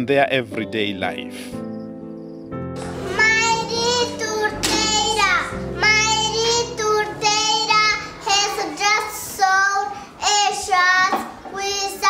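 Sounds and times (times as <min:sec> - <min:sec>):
children singing: 0:02.8 - 0:09.9.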